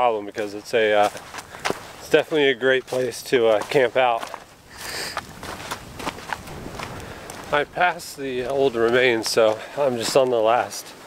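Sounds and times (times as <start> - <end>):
footsteps on woodland trail: 0.0 - 11.0.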